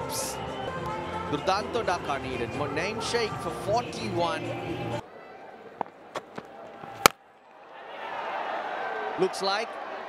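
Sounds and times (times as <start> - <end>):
crowd noise: 0.0 - 10.0
cricket bat cracking ball: 5.8 - 7.2.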